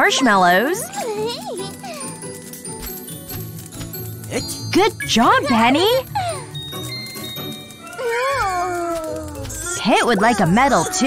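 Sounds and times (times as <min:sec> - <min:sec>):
light background music: 0:00.0 - 0:11.0
sparkle chime: 0:01.8 - 0:09.7.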